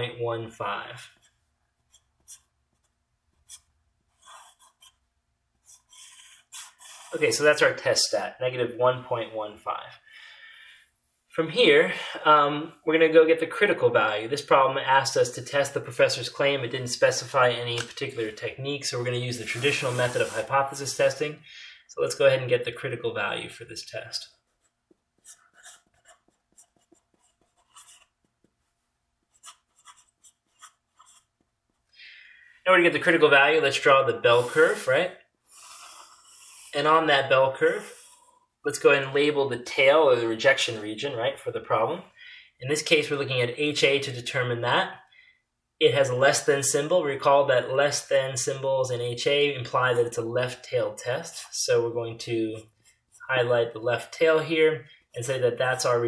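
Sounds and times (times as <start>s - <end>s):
marker scratching: 1.0s - 7.6s, 19.0s - 21.2s, 24.3s - 31.9s, 34.3s - 34.9s, 35.6s - 36.8s.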